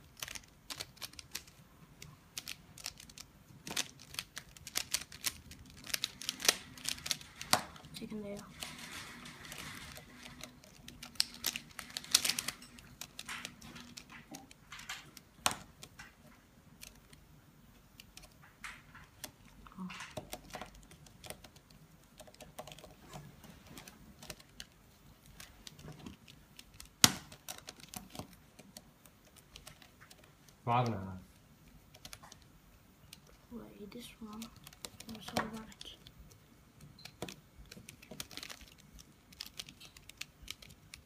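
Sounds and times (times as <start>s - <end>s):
puzzle cube layers clicking: 0.0s - 8.5s.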